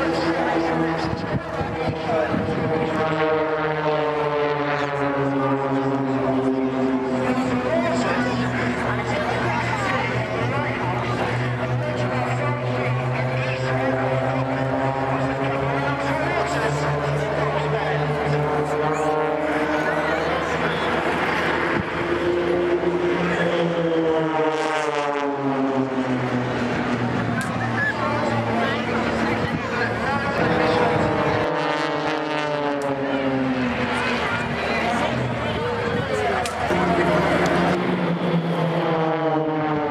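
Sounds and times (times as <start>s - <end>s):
propeller aircraft droning: 0.0s - 39.9s.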